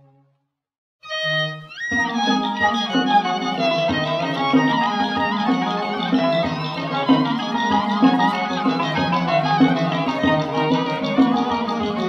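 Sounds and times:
violin sliding upward: 0:01.0 - 0:12.0
string ensemble playing: 0:01.1 - 0:12.0.

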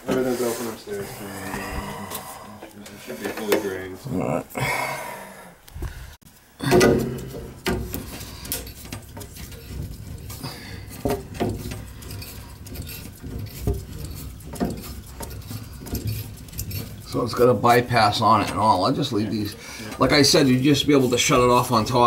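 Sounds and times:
loud clunk: 0:06.6 - 0:09.0
metal pipe parts clinking: 0:06.6 - 0:22.0.

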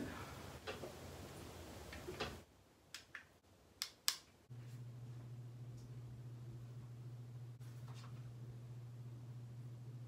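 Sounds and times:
low steady hum: 0:04.4 - 0:10.0.

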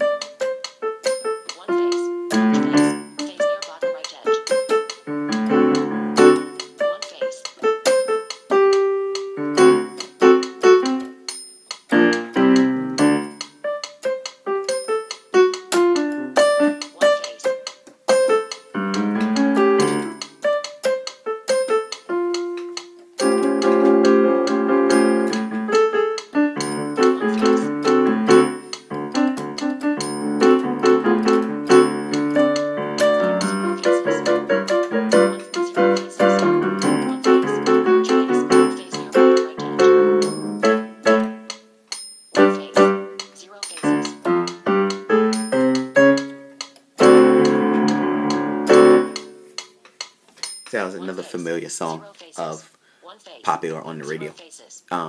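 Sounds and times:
solo piano keyboard melody: 0:00.0 - 0:51.6.

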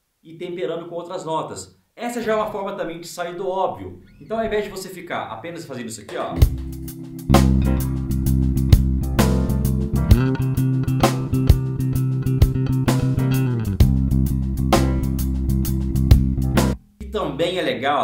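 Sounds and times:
drum beat: 0:06.1 - 0:17.6
electric bass guitar: 0:06.3 - 0:17.3.

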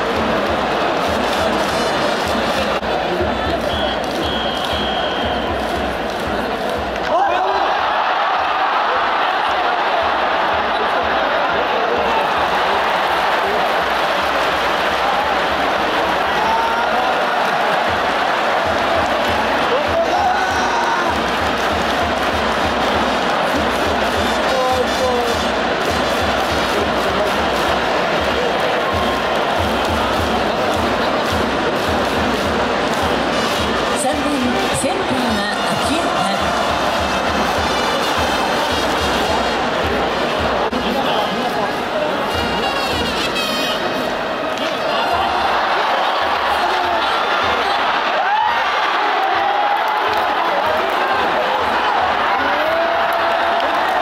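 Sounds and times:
cheering music with low beat: 0:00.0 - 0:54.0
stadium crowd cheering: 0:00.0 - 0:54.0.

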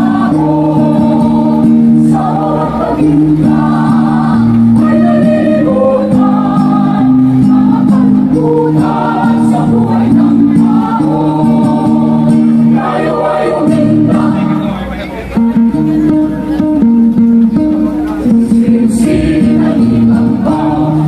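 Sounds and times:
mixed choir singing: 0:00.0 - 0:14.9, 0:18.2 - 0:21.0.

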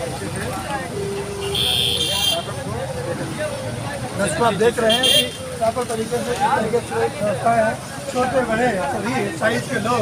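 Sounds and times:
vehicle horn: 0:01.4 - 0:02.5.

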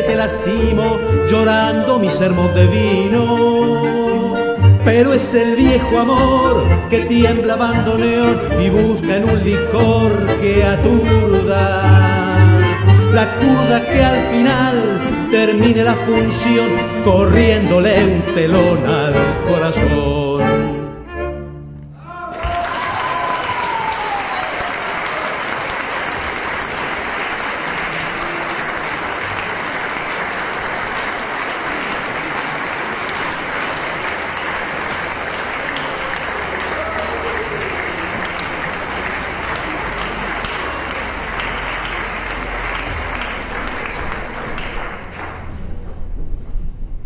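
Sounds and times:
audience applauding: 0:22.1 - 0:45.8.

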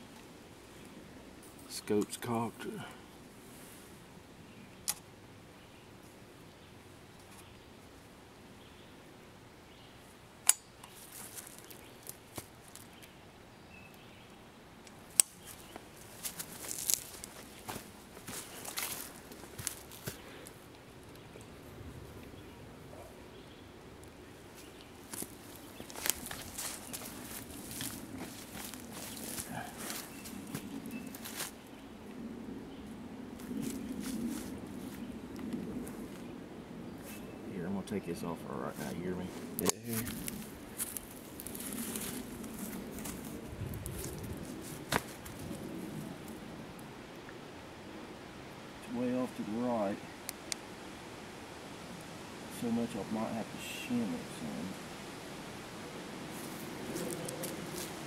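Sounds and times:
rustling and scraping: 0:24.6 - 0:31.6.

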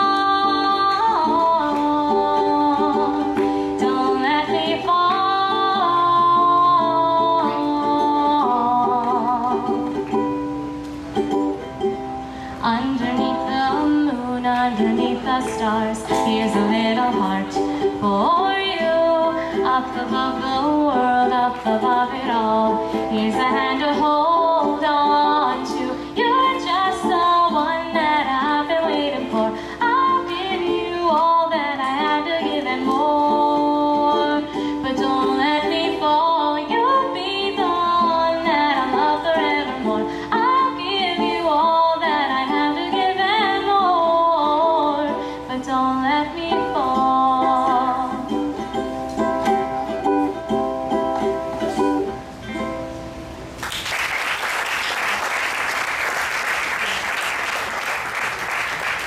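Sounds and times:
person singing: 0:00.0 - 0:10.3, 0:12.2 - 0:50.2
strummed ukulele: 0:00.0 - 0:53.8
audience applause: 0:53.6 - 0:59.0.

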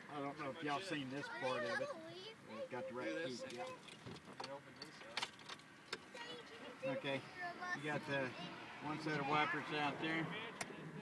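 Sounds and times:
faint talk: 0:00.1 - 0:04.0.

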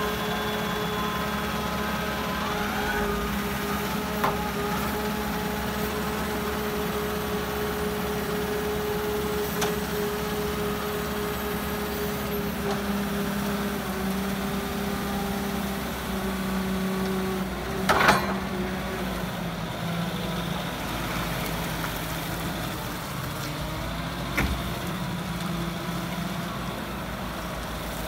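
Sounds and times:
diesel forklift engine running: 0:00.0 - 0:28.0.

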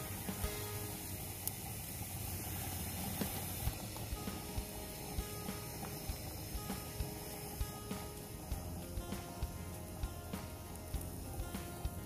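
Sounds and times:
soft background music: 0:00.0 - 0:12.0
steaks sizzling on a grill: 0:00.0 - 0:12.0.

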